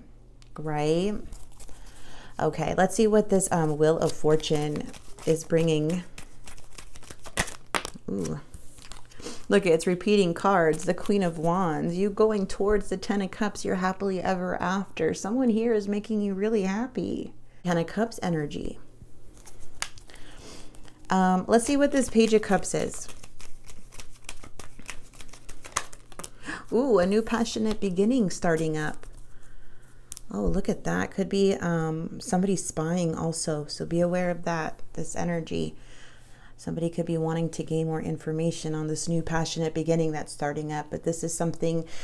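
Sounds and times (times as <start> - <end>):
cards being shuffled: 1.2 - 2.1, 3.4 - 9.5, 10.4 - 11.6, 19.3 - 26.5, 27.2 - 29.2
cards flicking and tapping: 4.5 - 8.0, 23.0 - 26.4.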